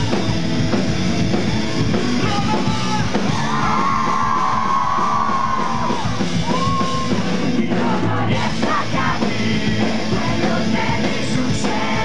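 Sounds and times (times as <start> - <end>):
drums: 0.0 - 12.0
rock band playing live: 0.0 - 12.0.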